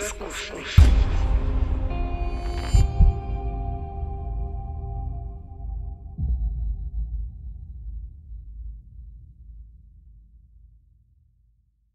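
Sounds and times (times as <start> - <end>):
deep boom: 0.8 - 9.8
low rumble: 0.8 - 10.7.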